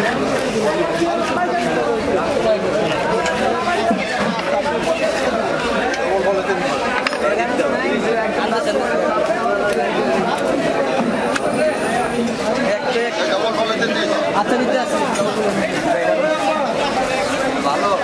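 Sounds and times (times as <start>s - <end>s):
chatter of overlapping voices: 0.0s - 18.0s.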